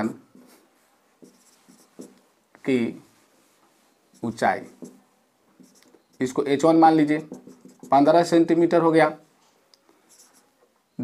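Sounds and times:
marker pen writing on whiteboard: 0.3s - 0.6s, 1.2s - 2.2s, 4.1s - 8.3s, 10.1s - 10.6s
person speaking: 4.1s - 9.3s.

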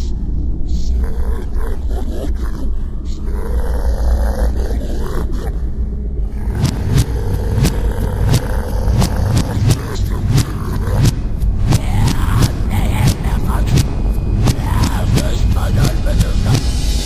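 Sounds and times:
distorted bass and guitar rumble: 5.8s - 17.0s
drum hits: 6.5s - 17.0s.

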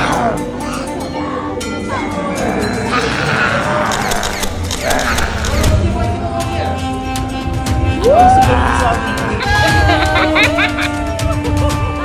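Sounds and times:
quick clicks: 3.9s - 5.8s
people shouting excitedly: 8.0s - 10.4s.

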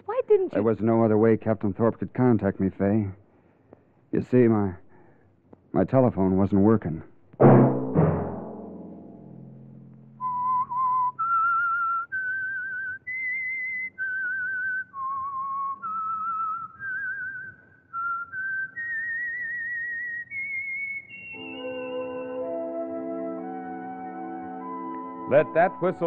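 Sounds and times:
timpani stroke ringing: 7.4s - 10.4s
person whistling slow melody: 10.2s - 26.0s.

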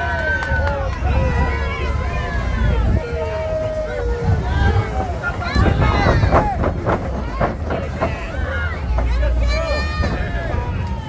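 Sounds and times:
people calling out and talking: 0.0s - 11.0s
wind rumbling on microphone: 0.0s - 11.0s.

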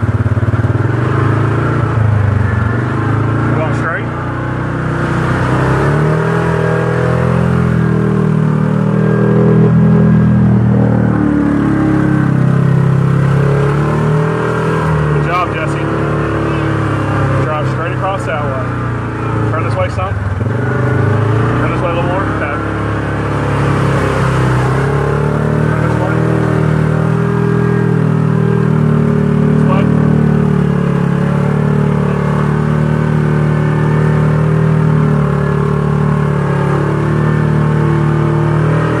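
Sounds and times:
vehicle engine running: 0.0s - 39.0s.

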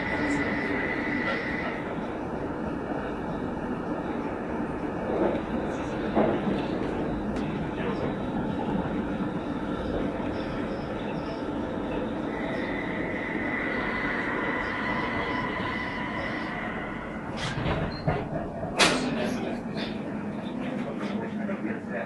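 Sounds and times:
tram rumble: 0.0s - 22.0s
high-pitched wheel squeal: 12.3s - 18.0s.

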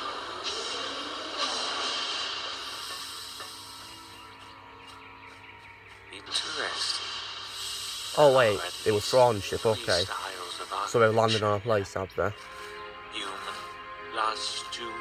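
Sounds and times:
hissing whooshing sound effect: 0.0s - 4.2s, 6.3s - 10.9s
background music with held tones: 0.0s - 15.0s.

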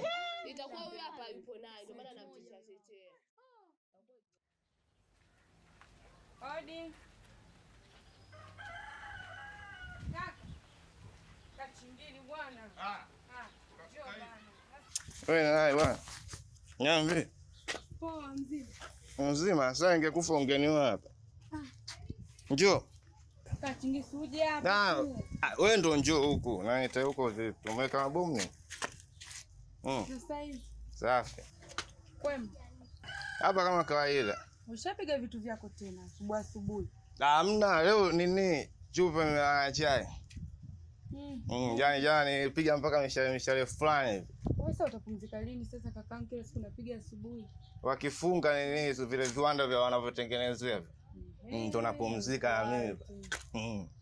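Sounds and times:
rooster crowing: 8.2s - 10.2s, 33.0s - 34.6s.

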